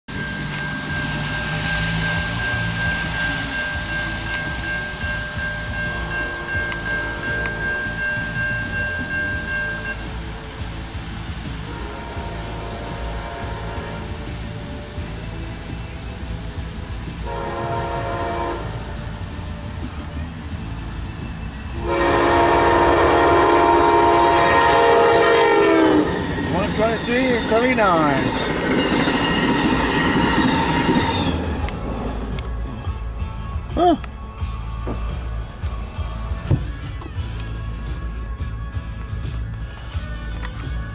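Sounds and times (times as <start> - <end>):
locomotive air horn blasts: 0.4 - 10.0, 11.7 - 14.3, 17.2 - 19.0, 21.8 - 28.5.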